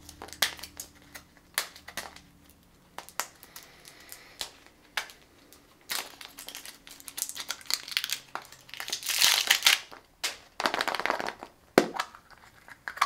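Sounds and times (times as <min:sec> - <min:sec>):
plastic crinkling and rustling: 0:00.0 - 0:13.0.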